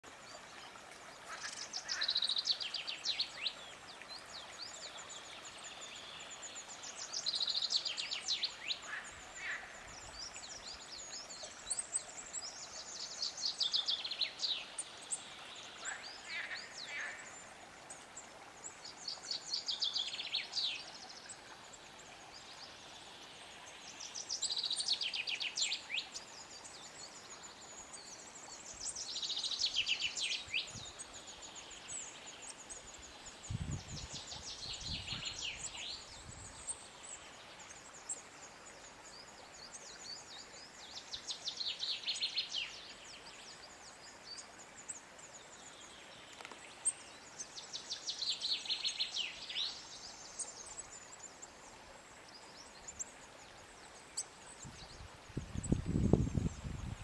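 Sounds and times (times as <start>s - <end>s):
faint steady background noise: 0.0s - 57.0s
songbird singing: 0.0s - 57.0s.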